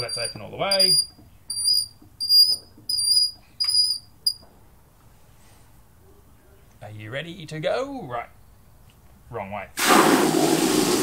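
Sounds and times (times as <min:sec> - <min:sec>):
tap handle squeaking: 0:00.0 - 0:04.4.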